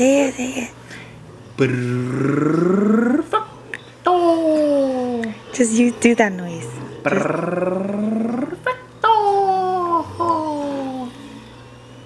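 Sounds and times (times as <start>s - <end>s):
baby cooing: 7.0s - 11.2s.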